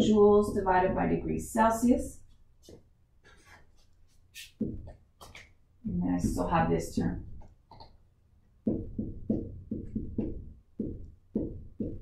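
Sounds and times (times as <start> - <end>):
marker tapping on whiteboard: 4.5 - 5.5, 7.4 - 8.0, 8.6 - 12.0.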